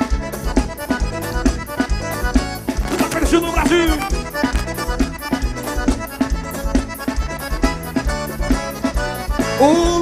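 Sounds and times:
accordion melody: 0.0s - 10.0s
bass and drum beat: 0.0s - 10.0s.

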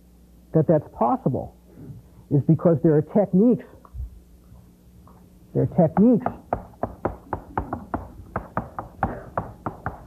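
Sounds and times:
chalk tapping on chalkboard: 5.9s - 10.0s.

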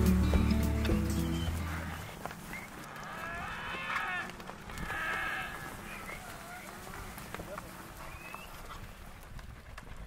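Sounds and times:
hooves trotting on dry dirt: 0.0s - 10.0s.

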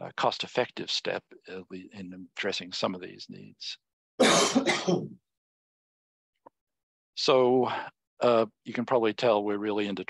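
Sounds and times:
man coughing: 4.2s - 5.1s.

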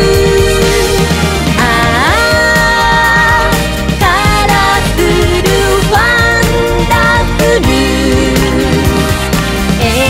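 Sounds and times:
pop song with band: 0.0s - 10.0s.

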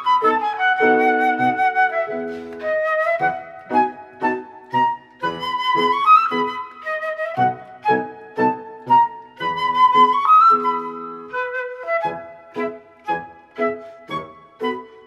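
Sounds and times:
flute melody: 0.0s - 15.0s.

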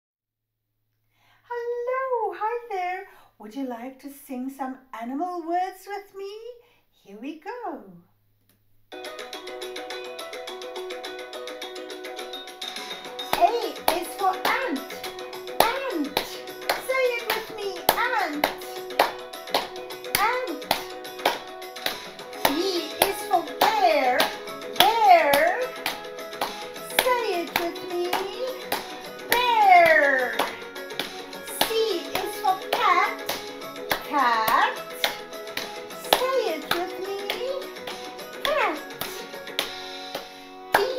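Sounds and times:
children's sing-along music: 9.0s - 40.9s
hand claps: 12.7s - 40.9s.

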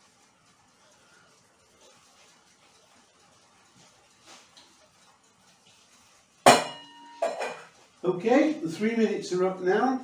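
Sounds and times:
metal kitchenware clanking: 6.5s - 7.7s.

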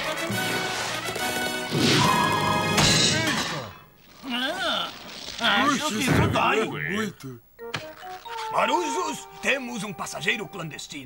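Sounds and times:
orchestral cartoon music: 0.0s - 3.4s
slapstick crash: 0.4s - 3.7s.

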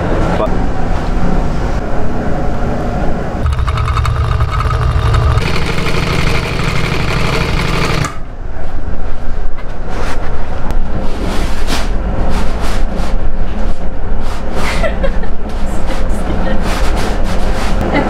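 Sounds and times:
sewing machine clatter: 3.4s - 8.2s.

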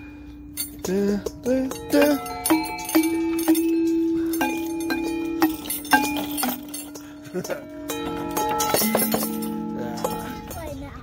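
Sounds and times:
metallophone notes ringing: 0.0s - 11.0s.

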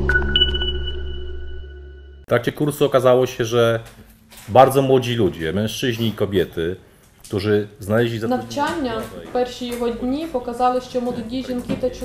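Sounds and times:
high ping-like tones: 0.0s - 2.2s.

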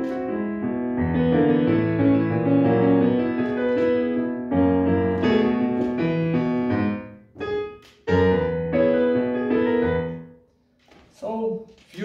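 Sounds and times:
digital piano chords: 0.0s - 10.4s.

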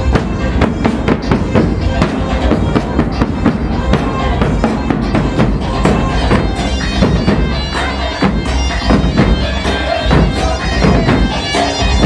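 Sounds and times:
large drums beaten hard: 0.0s - 12.0s
live band music: 0.0s - 12.0s.

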